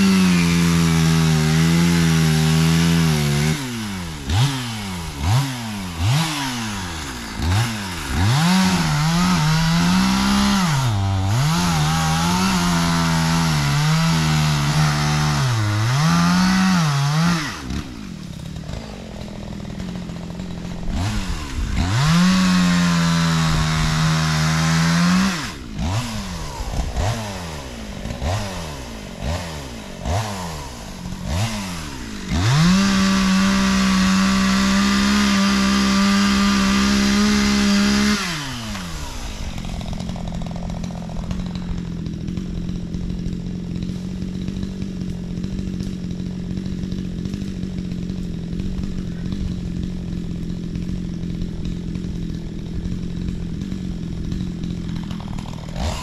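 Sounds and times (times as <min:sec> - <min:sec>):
chainsaw cutting and revving: 0:00.0 - 0:56.0.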